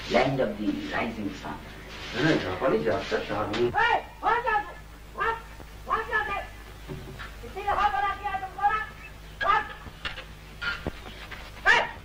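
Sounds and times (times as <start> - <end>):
dog barking: 11.6 - 12.0.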